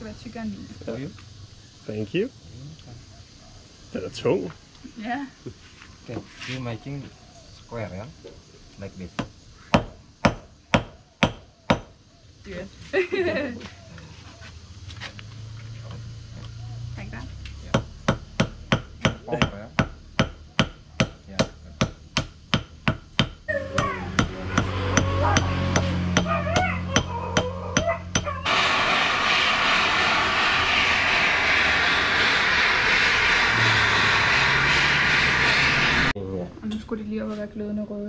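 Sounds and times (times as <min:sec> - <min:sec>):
hammer striking metal on anvil: 0:09.8 - 0:11.9, 0:17.7 - 0:28.3
voices: 0:12.4 - 0:14.4, 0:16.4 - 0:17.8, 0:23.5 - 0:28.4
gas torch hissing: 0:27.8 - 0:36.2.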